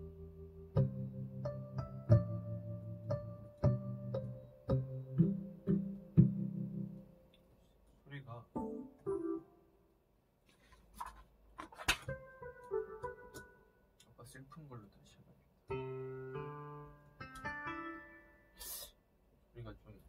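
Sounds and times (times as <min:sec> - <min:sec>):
digital piano playing: 0:00.0 - 0:07.3, 0:08.5 - 0:09.9, 0:12.1 - 0:13.8, 0:15.7 - 0:18.6.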